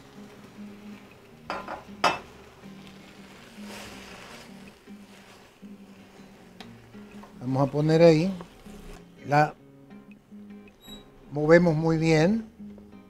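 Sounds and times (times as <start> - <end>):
faint sizzle of food frying: 0.0 - 9.0
utensil clinking on metal pot: 1.5 - 2.3.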